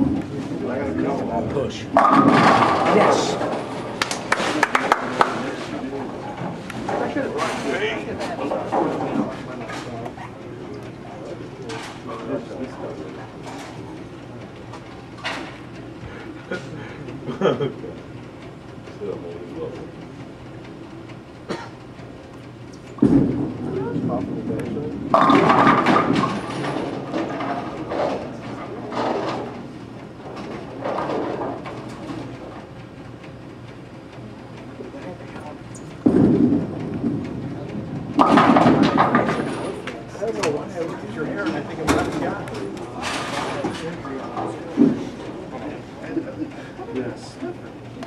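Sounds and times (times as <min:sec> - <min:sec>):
bowling ball rolling: 0:01.9 - 0:07.6, 0:23.0 - 0:32.6, 0:35.6 - 0:40.1
bowling pins crashing: 0:02.0 - 0:05.5, 0:25.1 - 0:29.6, 0:36.0 - 0:39.8.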